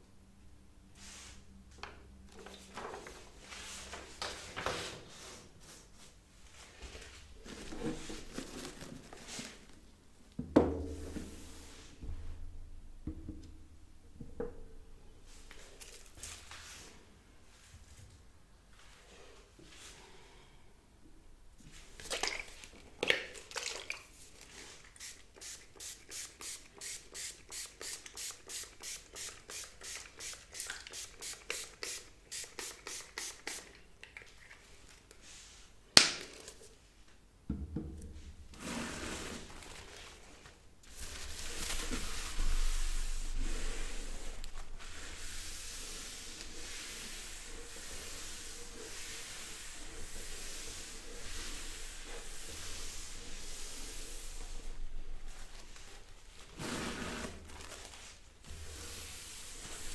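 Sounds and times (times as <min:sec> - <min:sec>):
spray bottle spritz: 0:25.0 - 0:33.8
paper towel rubbing: 0:38.7 - 0:59.9.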